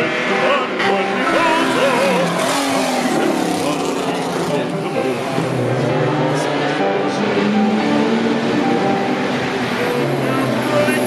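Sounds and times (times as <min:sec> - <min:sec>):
operatic singing: 0:00.0 - 0:11.0
racing car engine passing: 0:00.0 - 0:11.0.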